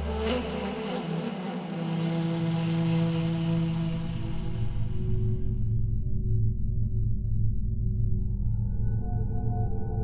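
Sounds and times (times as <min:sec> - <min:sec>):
low sustained drone music: 0:00.0 - 0:10.0.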